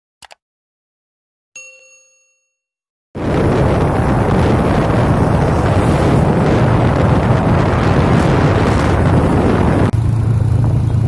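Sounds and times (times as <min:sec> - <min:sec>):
bell ding: 0:01.6 - 0:02.8.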